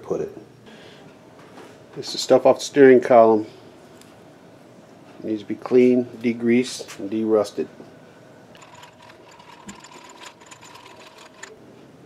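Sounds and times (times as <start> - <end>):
metal nuts rattling in plastic cup: 8.6 - 11.6.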